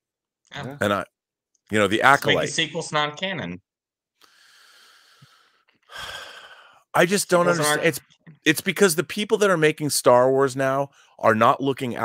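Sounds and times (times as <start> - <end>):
man speaking: 0.6 - 1.0, 1.7 - 2.6, 6.0 - 12.0
man sighing: 5.9 - 6.7.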